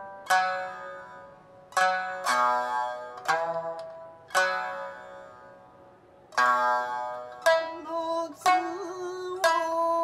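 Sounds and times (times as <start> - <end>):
plucked string instrument notes: 0.0 - 10.0.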